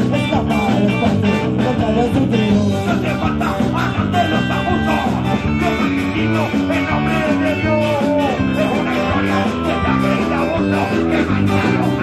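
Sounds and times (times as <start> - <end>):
punk rock band playing live: 0.0 - 12.0.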